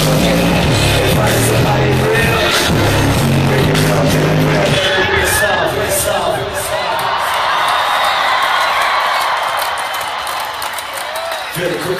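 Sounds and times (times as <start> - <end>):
band music: 0.0 - 7.3
crowd cheering and whooping: 4.6 - 11.9.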